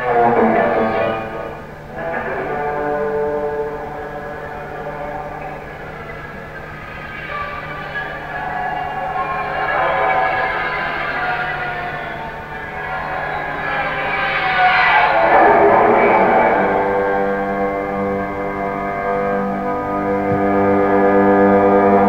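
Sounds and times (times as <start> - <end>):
bowed electric guitar wailing: 0.0 - 22.0
steady low drone: 0.0 - 22.0.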